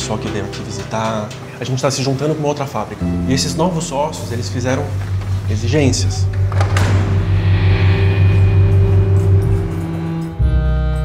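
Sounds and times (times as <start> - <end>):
deep pulsing drone: 3.0 - 11.0.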